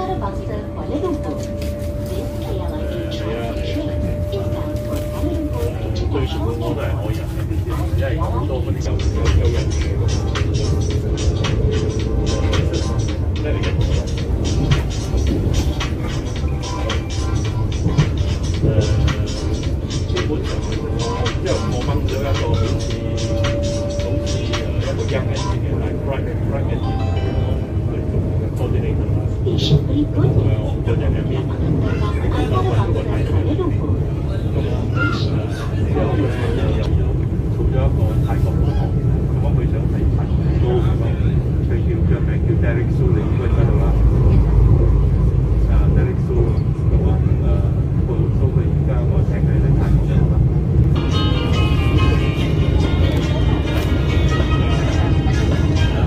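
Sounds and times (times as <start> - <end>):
indistinct voices: 0.0 - 56.0
train rumbling: 0.0 - 56.0
music: 8.9 - 26.2, 50.9 - 56.0.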